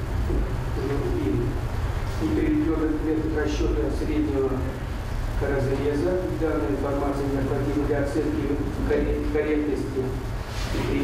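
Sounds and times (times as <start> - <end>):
steady low hum: 0.0 - 11.0
man reading aloud: 0.3 - 11.0.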